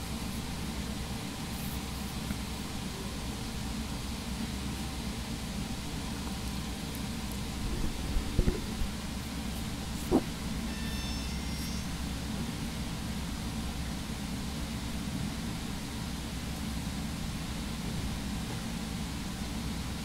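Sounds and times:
room hum and hiss: 0.0s - 20.0s.

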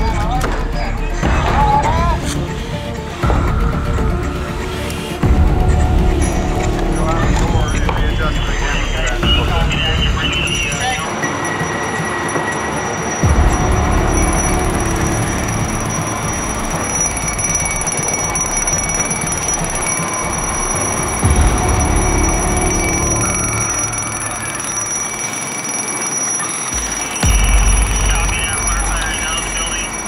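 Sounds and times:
background music: 0.0s - 30.0s
high-pitched alarm tone: 4.0s - 30.0s.

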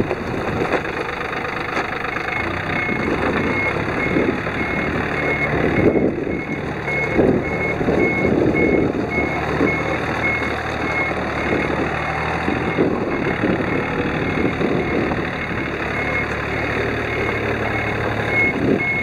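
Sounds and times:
tractor diesel engine running: 0.0s - 19.0s
reverse warning beeper: 1.9s - 19.0s.

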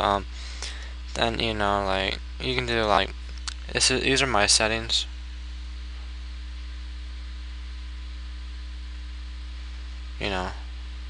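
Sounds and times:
low hum with faint hiss: 0.0s - 11.0s.

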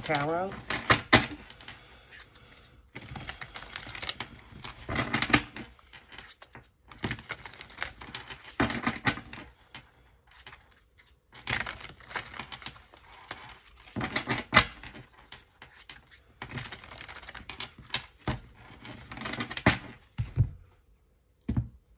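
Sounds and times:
cards shuffling: 0.1s - 20.4s.

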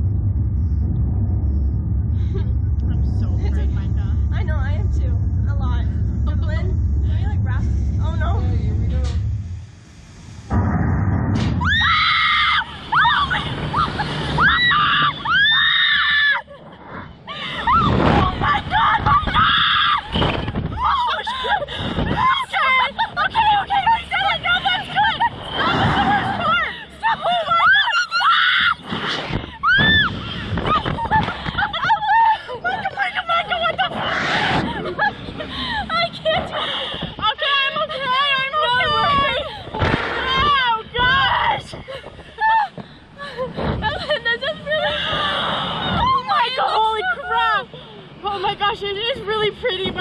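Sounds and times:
loud rush of air: 0.0s - 15.4s, 33.9s - 37.3s
low rumble: 0.0s - 48.2s
young women screaming: 11.6s - 16.6s, 17.4s - 28.8s, 29.6s - 33.9s
riders screaming: 17.5s - 21.3s.

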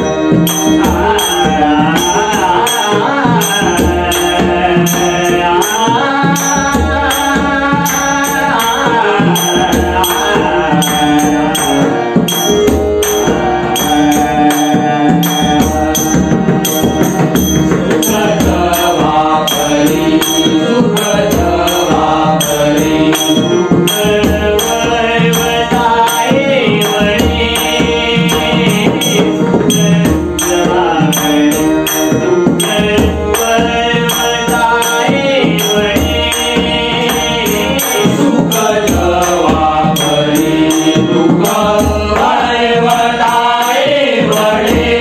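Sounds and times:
hand drum: 0.0s - 45.0s
harmonium: 0.0s - 45.0s
voices singing: 0.0s - 45.0s.

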